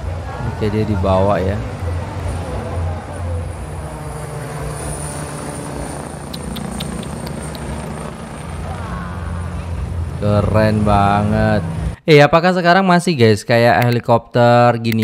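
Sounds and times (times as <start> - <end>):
helicopter rotor beating: 0.0 - 12.0.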